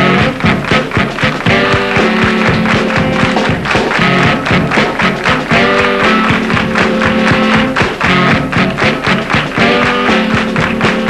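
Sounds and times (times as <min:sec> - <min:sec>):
driving drum beat: 0:00.0 - 0:11.0
funk band playing: 0:00.0 - 0:11.0
guitar chords: 0:00.0 - 0:11.0.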